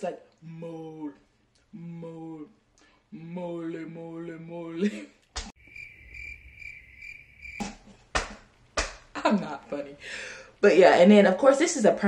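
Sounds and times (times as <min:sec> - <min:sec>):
crickets chirping: 0:05.6 - 0:08.1.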